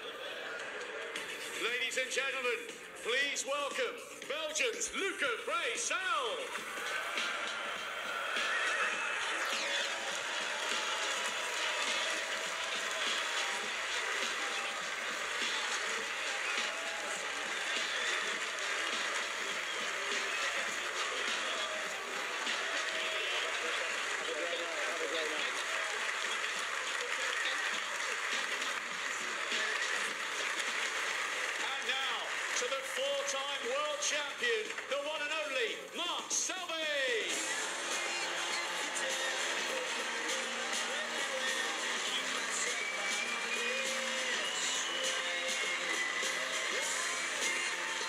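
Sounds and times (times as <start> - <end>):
crowd applauding and cheering: 0.0 - 2.2, 5.0 - 48.0
shouts and whoops: 6.1 - 18.8.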